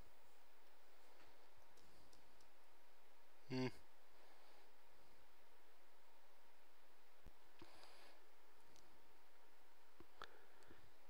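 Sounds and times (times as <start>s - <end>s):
faint room hiss: 0.0s - 11.0s
man humming: 3.4s - 3.8s.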